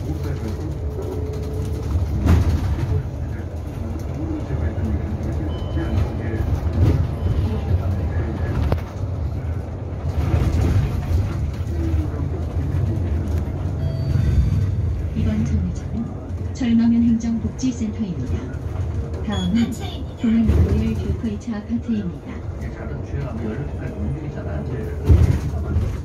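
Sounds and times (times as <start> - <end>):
bus tyre and road rumble: 0.0 - 26.0.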